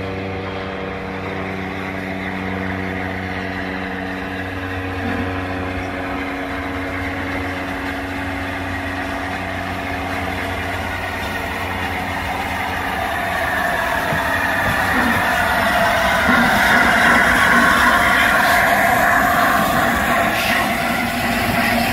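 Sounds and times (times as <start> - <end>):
steady low hum: 0.0 - 21.9
steam locomotive running: 0.0 - 21.9.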